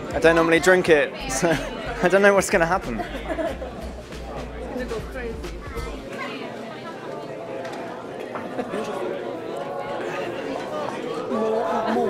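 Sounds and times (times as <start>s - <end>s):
murmur of overlapping voices: 0.0s - 12.0s.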